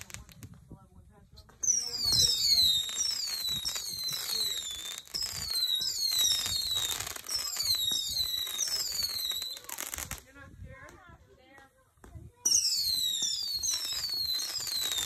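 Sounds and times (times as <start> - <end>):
fireworks crackling: 0.0 - 15.0
whistling fireworks: 1.5 - 10.2, 12.2 - 15.0.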